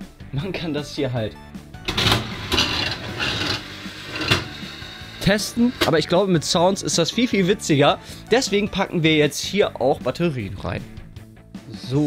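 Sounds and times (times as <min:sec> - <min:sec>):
slot machine reels clattering: 0:01.8 - 0:06.0.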